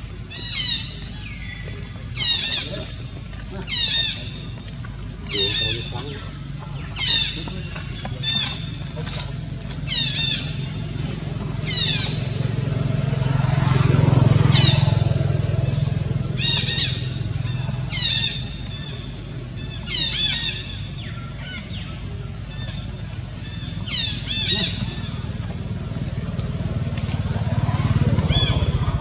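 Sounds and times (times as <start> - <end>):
bird calling: 0.0 - 29.0
vehicle engine hum passing: 0.0 - 29.0.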